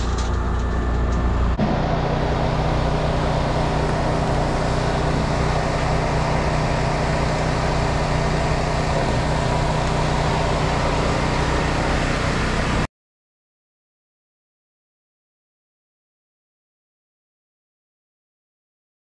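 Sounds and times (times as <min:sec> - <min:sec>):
machine motor humming: 0:00.0 - 0:12.9.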